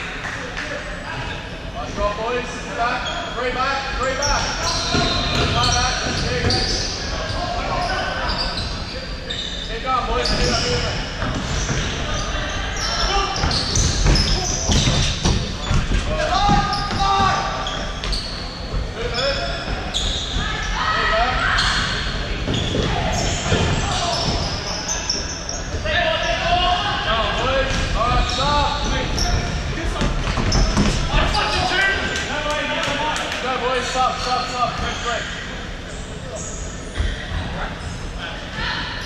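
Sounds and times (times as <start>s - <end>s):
players calling out: 3.0s - 37.1s.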